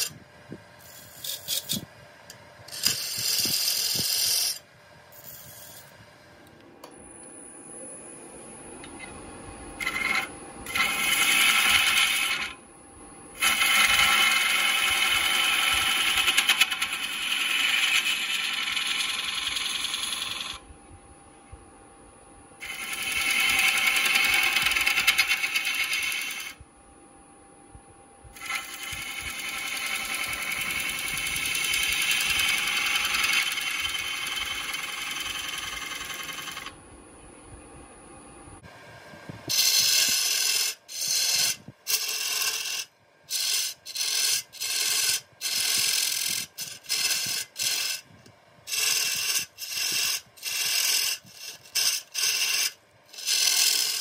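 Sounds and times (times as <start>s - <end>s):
wood lathe running: 2.8s - 4.6s, 9.8s - 12.6s, 13.4s - 20.6s, 22.6s - 26.6s, 28.4s - 36.8s, 39.5s - 48.0s, 48.7s - 54.0s.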